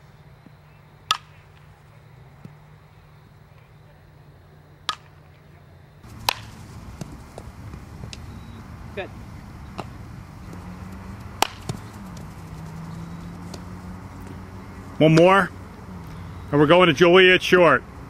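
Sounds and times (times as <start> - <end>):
ball hitting glove: 1.1 - 1.4, 6.0 - 16.2
bat striking ball: 1.1 - 1.7, 4.9 - 5.2, 6.0 - 16.2
low hum: 6.0 - 16.6.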